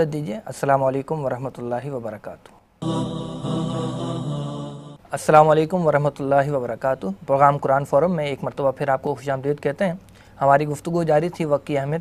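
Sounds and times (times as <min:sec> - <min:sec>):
held voice-like music note: 0:02.8 - 0:05.0.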